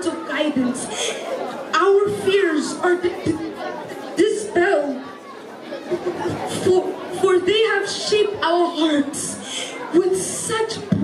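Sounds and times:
background chatter: 0.0s - 11.0s
people talking: 0.0s - 11.0s.

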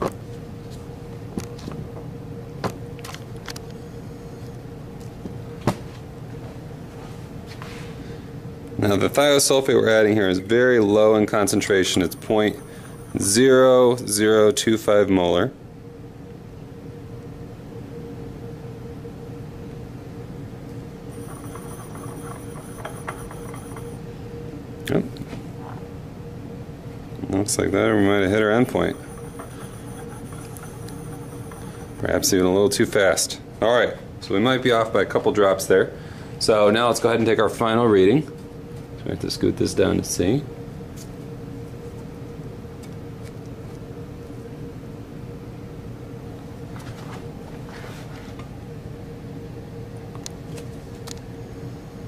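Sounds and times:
steady room hum: 0.0s - 52.0s.

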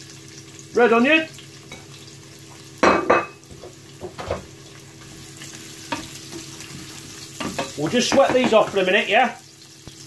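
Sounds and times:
onion sizzling in hot oil: 0.0s - 10.0s.

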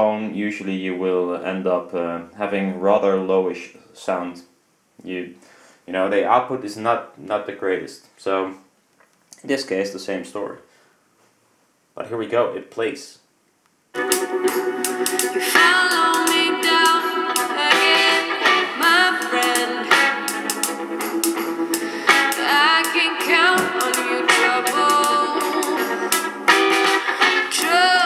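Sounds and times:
song with singing and guitar: 14.0s - 28.0s.

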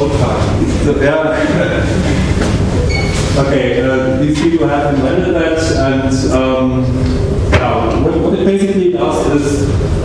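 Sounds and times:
audience laughter: 1.2s - 2.7s.

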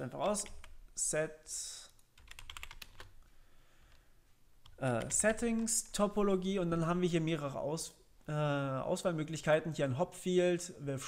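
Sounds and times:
keyboard typing: 0.0s - 0.8s, 1.9s - 3.2s, 4.6s - 6.4s.

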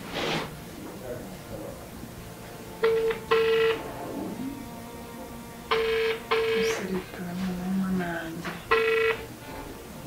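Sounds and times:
telephone ringback double beep: 2.8s - 3.8s, 5.7s - 6.7s, 8.7s - 9.2s.

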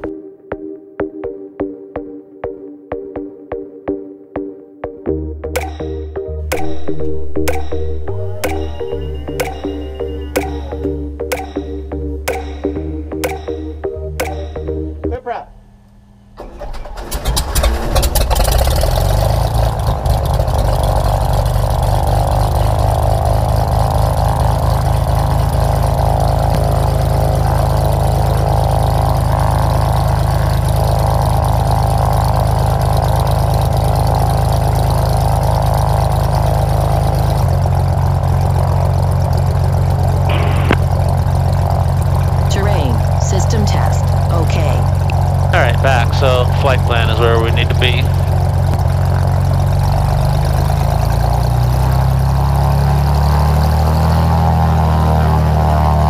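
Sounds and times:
light aircraft engine running: 6.5s - 56.0s.

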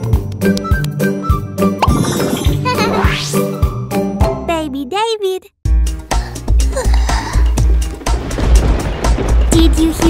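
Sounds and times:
rising cartoon sound effect: 1.8s - 3.6s.

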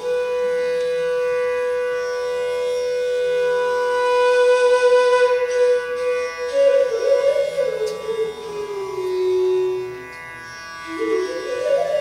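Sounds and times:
bamboo flute long note: 0.0s - 10.1s, 10.8s - 12.0s.

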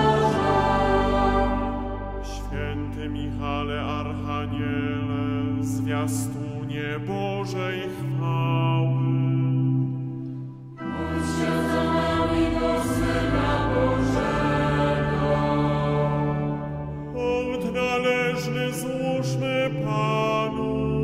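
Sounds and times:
choir singing a chanted prayer: 0.0s - 4.0s, 10.8s - 19.6s.

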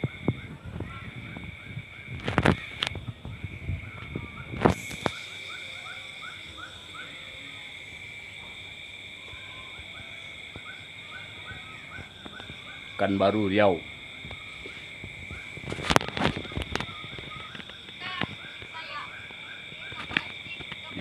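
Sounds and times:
insect chorus drone: 0.0s - 21.0s
short falling insect chirps: 4.5s - 7.4s.

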